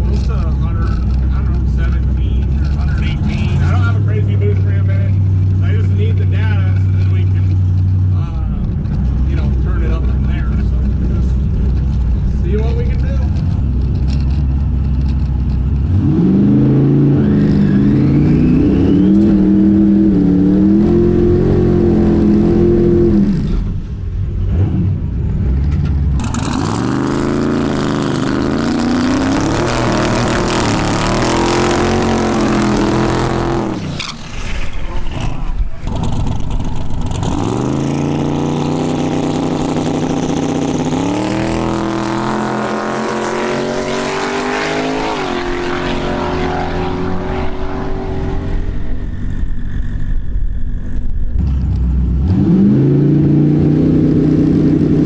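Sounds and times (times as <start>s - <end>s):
drag car engine revving: 0.0s - 55.0s.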